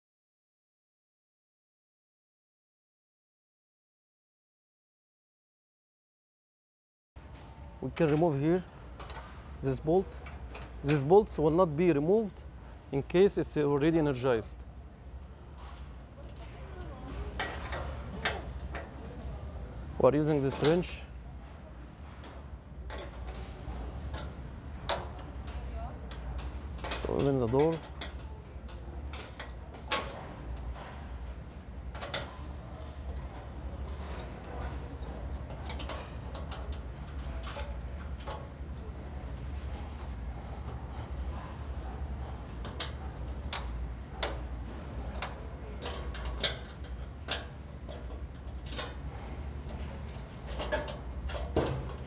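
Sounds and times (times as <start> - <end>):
steady low hum: 7.2 - 52.0
wrench clicking on metal bolts: 35.2 - 38.4, 42.5 - 52.0.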